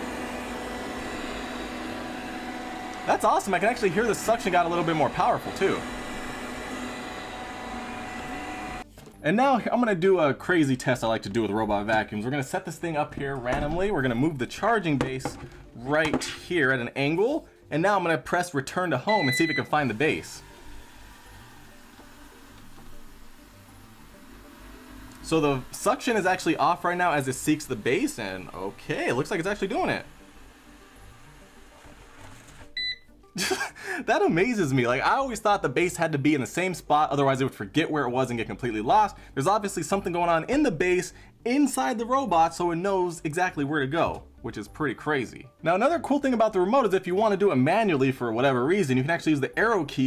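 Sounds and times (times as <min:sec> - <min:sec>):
robot vacuum whirring: 0:00.0 - 0:08.8, 0:19.2 - 0:32.8
high-pitched electronic beep: 0:19.1 - 0:19.7.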